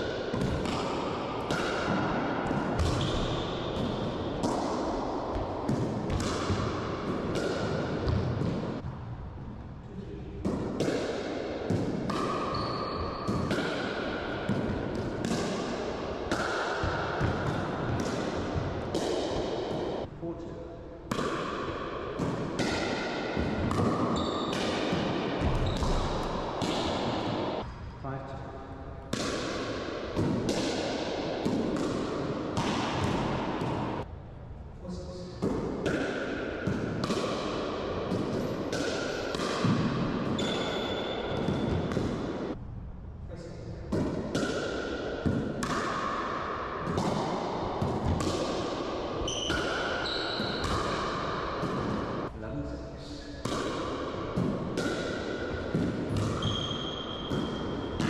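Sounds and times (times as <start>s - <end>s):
ball bouncing off floor and walls: 0.3s - 9.6s, 10.4s - 20.0s, 21.1s - 27.7s, 29.1s - 34.1s, 35.4s - 42.5s, 43.9s - 46.2s, 46.8s - 52.2s, 53.4s - 58.0s.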